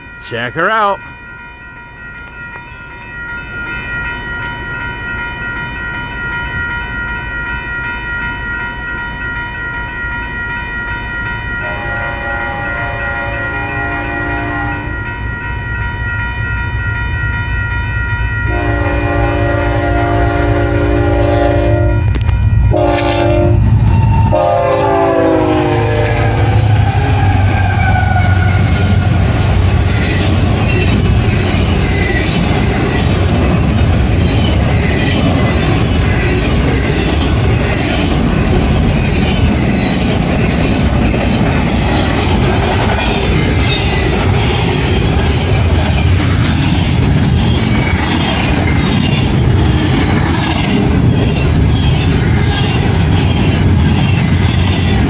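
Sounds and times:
railroad crossing bell ringing: 0:00.0 - 0:55.0
train rumble: 0:00.0 - 0:55.0
locomotive horn: 0:11.6 - 0:15.1, 0:18.5 - 0:29.0.

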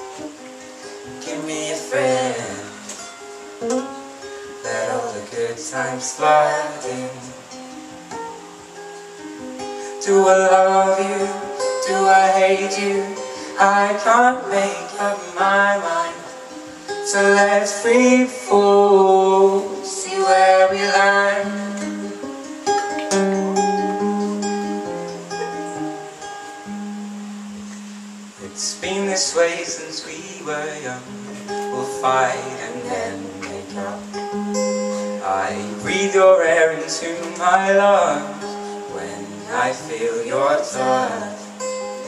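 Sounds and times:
acoustic guitar strummed softly: 0:00.0 - 0:42.0.

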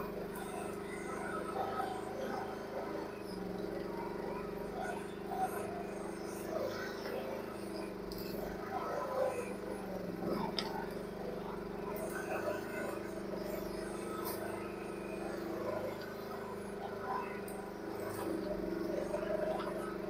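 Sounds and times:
excavator engine droning: 0:00.0 - 0:20.0.

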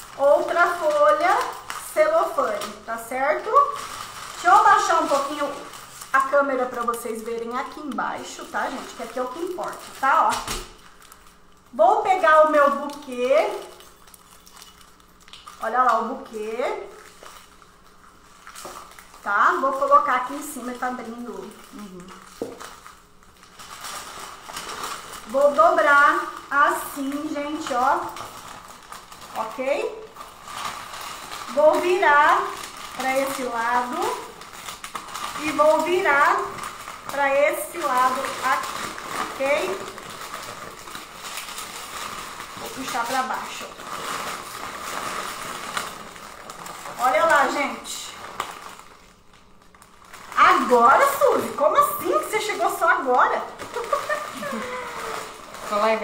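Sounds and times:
person talking: 0:00.2 - 0:03.8, 0:04.4 - 0:10.6, 0:29.3 - 0:30.1, 0:31.5 - 0:34.3, 0:35.4 - 0:38.8, 0:39.4 - 0:40.0, 0:42.6 - 0:43.8, 0:47.0 - 0:48.2, 0:50.4 - 0:56.0.

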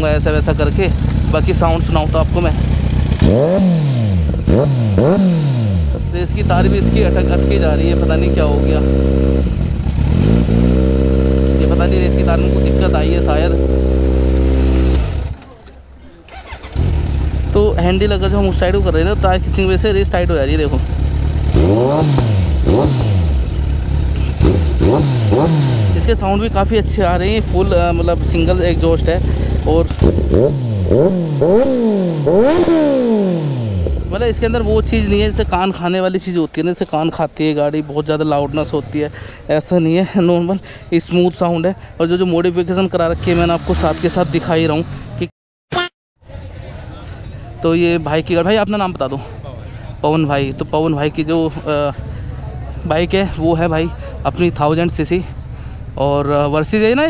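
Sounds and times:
motorcycle engine revving: 0:00.0 - 0:45.3, 0:46.3 - 0:57.0.

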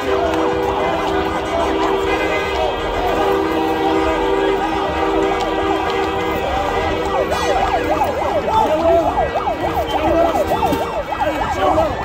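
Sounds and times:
long horn blasts: 0:00.0 - 0:08.5
siren yelping: 0:05.7 - 0:12.0.

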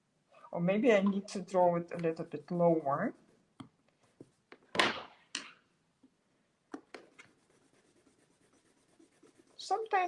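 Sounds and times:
pencil scratching on paper: 0:07.0 - 0:10.0.

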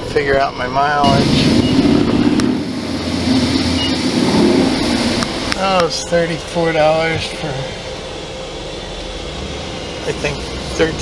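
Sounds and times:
engine and road noise inside van: 0:00.0 - 0:11.0.

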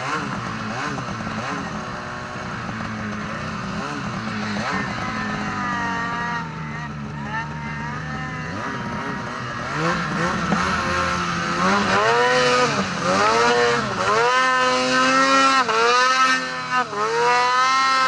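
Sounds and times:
snowmobile engine revving: 0:00.0 - 0:18.0.

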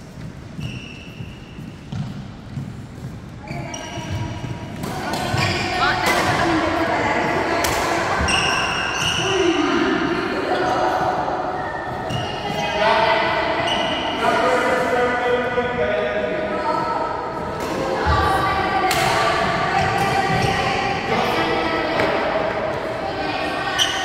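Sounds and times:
shoes squeaking: 0:00.0 - 0:06.6
people talking: 0:03.4 - 0:24.0.

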